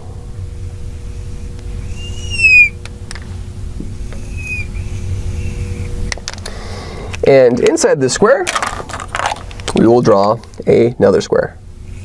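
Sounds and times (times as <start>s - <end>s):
steady low hum: 0.0s - 12.0s
marker squeaking on glass: 2.0s - 2.7s, 4.2s - 4.8s.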